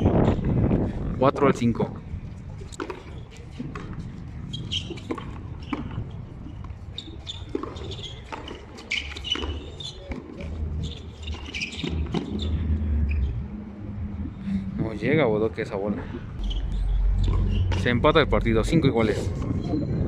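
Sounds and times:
low rumble: 12.0s - 20.0s.

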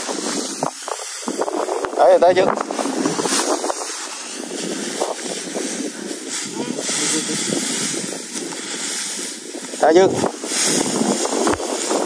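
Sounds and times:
dry straw rustling and crackling: 0.0s - 12.0s.

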